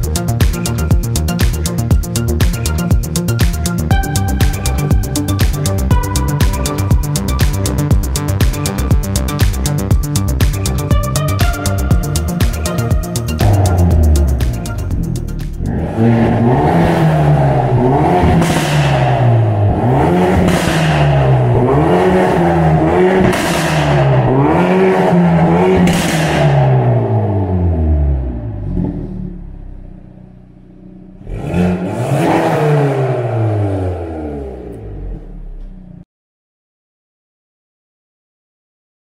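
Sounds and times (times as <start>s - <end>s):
car engine revving: 0.1s - 36.0s.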